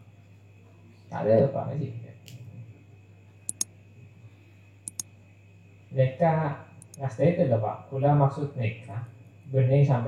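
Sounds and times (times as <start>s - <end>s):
low electrical hum: 0.0s - 10.0s
short sharp high clicks: 3.5s - 3.7s, 4.9s - 5.1s, 6.8s - 7.0s.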